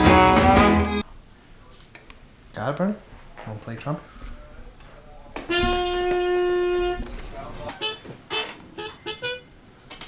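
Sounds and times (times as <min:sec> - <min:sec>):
trumpet long note: 0:00.0 - 0:01.0, 0:05.5 - 0:07.2
short trumpet blasts: 0:05.5 - 0:09.5.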